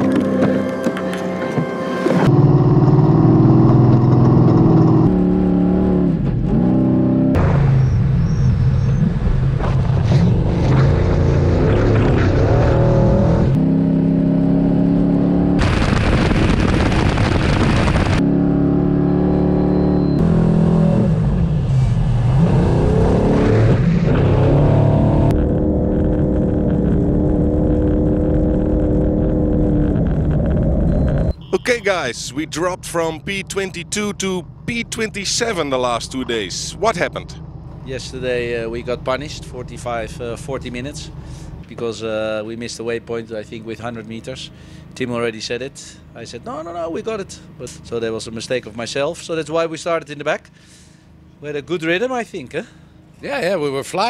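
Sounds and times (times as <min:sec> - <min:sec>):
car engine revving: 0:02.0 - 0:31.3.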